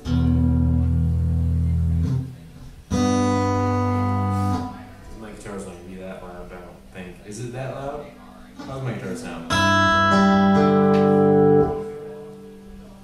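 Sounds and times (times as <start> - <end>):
acoustic guitar strumming: 0.0 - 5.7, 8.0 - 13.0.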